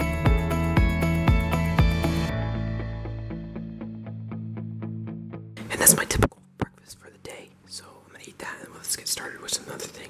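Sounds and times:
person whispering: 5.6 - 10.0.

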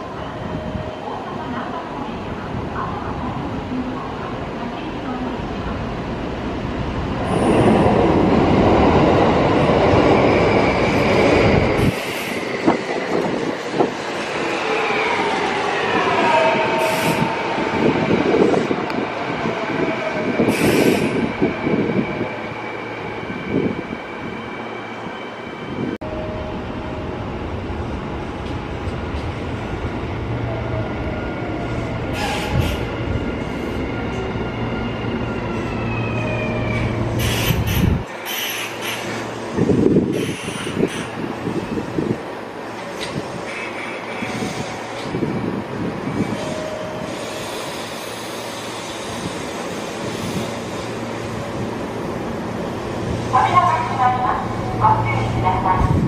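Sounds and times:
train passing: 0.0 - 56.0.

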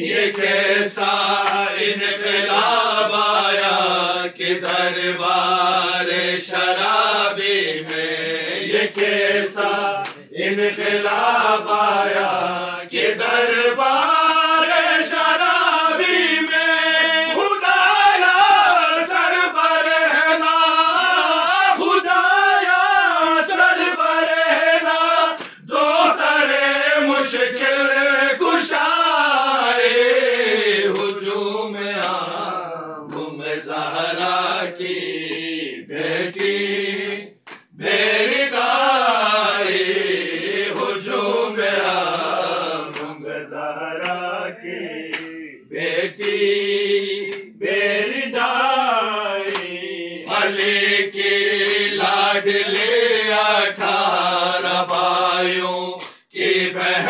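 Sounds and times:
men chanting a mourning lament: 0.0 - 57.0.

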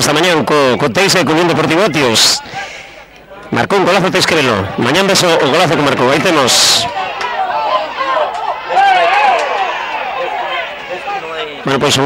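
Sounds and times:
voices shouting: 0.5 - 12.0.

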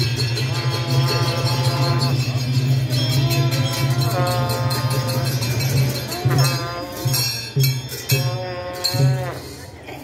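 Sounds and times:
metal cymbals ringing: 0.0 - 9.8.

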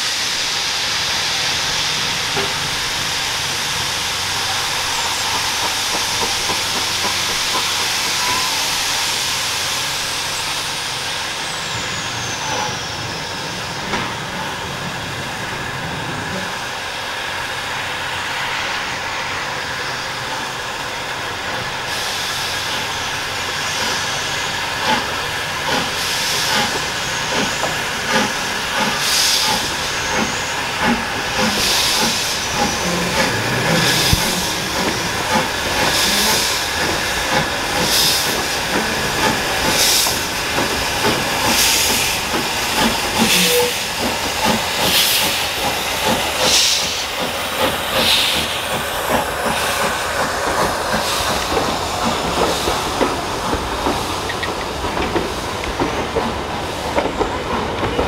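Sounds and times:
steam locomotive hissing: 0.0 - 58.0.

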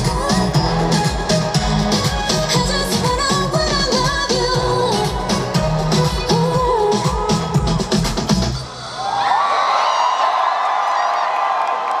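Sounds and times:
pop song over stage speakers: 0.0 - 9.9
crowd cheering and screaming: 8.6 - 12.0.

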